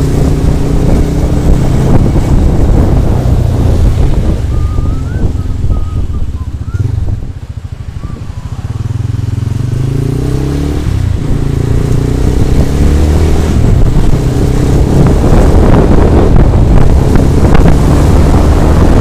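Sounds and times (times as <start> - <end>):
motorcycle engine: 0.0 - 19.0
wind buffeting microphone: 0.0 - 19.0.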